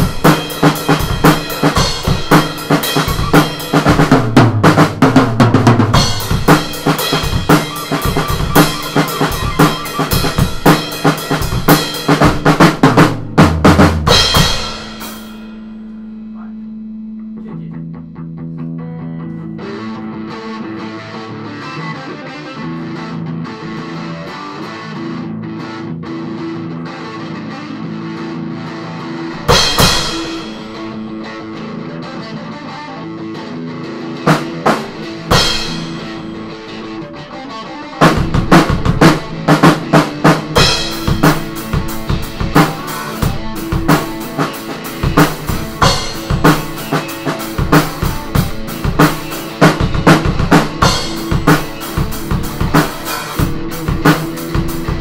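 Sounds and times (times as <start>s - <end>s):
drum and cymbal hit: 0.0s - 16.5s, 29.4s - 31.6s, 34.3s - 37.0s, 38.0s - 55.0s
drum kit playing: 0.0s - 18.2s, 28.8s - 33.4s, 34.0s - 55.0s
electric guitar solo: 5.9s - 12.0s, 15.7s - 55.0s.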